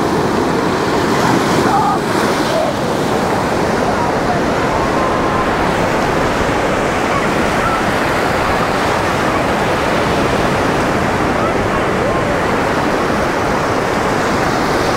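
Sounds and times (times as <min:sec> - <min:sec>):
distant voices: 0:00.0 - 0:14.9
small waves breaking on shore: 0:00.0 - 0:14.9.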